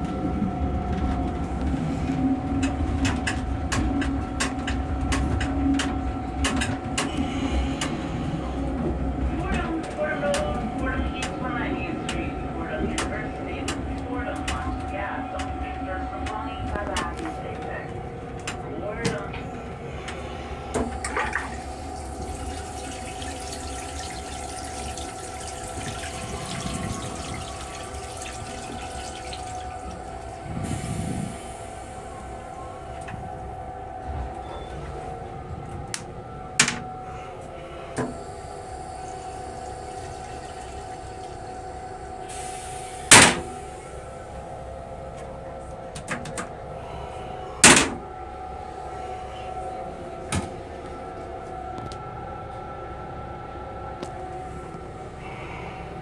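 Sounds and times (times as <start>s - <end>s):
train car hum: 0.0s - 56.0s
toilet flushing: 19.9s - 32.0s, 38.0s - 44.1s.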